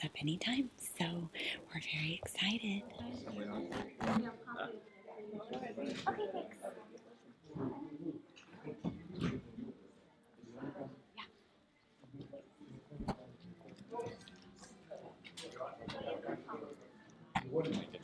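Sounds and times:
people talking: 0.0 - 4.3
people chattering: 0.0 - 18.0.

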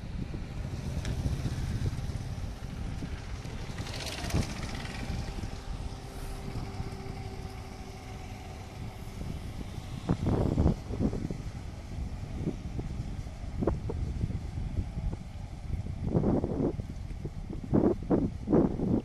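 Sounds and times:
motorcycle engines passing: 0.0 - 19.0
wind buffeting microphone: 0.0 - 19.0.

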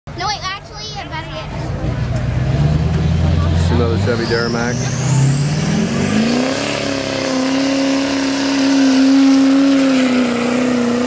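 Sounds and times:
diesel pickup engine running: 0.2 - 11.0.

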